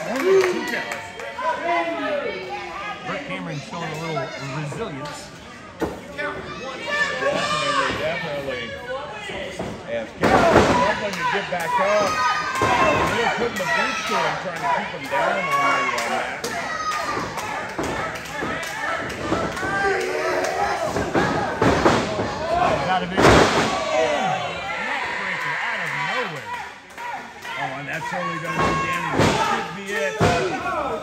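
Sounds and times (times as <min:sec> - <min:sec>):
crowd voices and shouting: 0:00.0 - 0:31.0.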